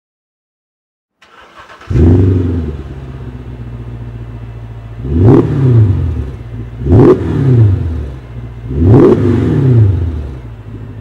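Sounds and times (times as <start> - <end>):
car engine revving and idling: 1.2 - 11.0.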